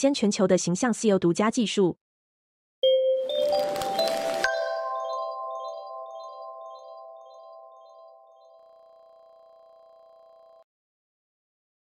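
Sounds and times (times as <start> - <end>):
logo jingle chime notes: 2.8 - 10.6.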